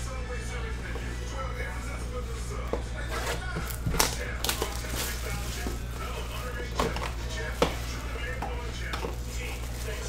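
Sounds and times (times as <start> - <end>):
plastic shrink-wrap crinkling: 3.0 - 10.0.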